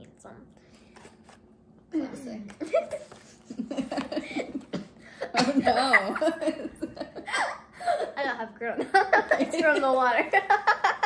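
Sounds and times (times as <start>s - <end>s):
girl and woman laughing: 2.6s - 8.2s, 8.8s - 11.0s.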